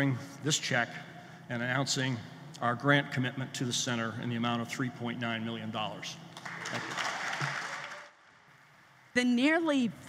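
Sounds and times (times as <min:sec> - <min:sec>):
audience applauding: 0:06.4 - 0:08.3.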